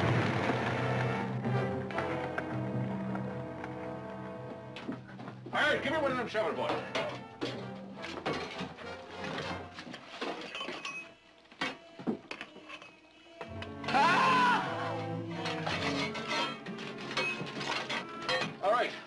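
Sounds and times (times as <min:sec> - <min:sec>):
dramatic orchestral music: 0:00.0 - 0:05.0, 0:13.5 - 0:18.6
loud strained cry: 0:13.8 - 0:15.4.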